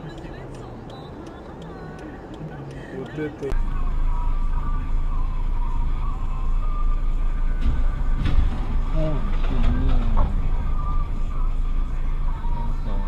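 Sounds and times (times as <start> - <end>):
low engine rumble: 0.0 - 13.0
vehicle crashing into lamp post: 7.6 - 10.6.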